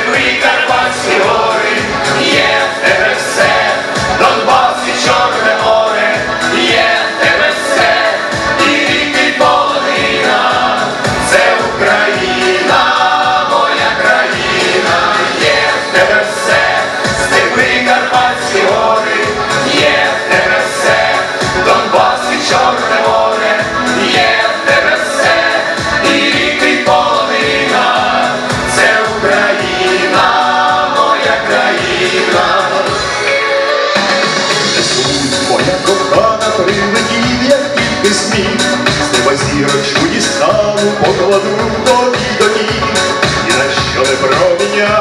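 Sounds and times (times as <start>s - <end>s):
mixed choir singing: 0.0s - 45.0s.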